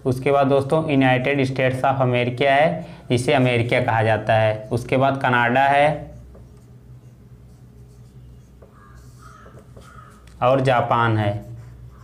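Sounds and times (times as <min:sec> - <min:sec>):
marker pen writing on whiteboard: 0:04.5 - 0:12.0
crow cawing: 0:08.7 - 0:10.3.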